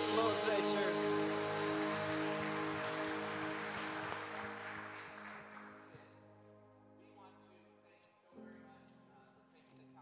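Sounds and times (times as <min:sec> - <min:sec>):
band holding final chord: 0:00.0 - 0:04.6.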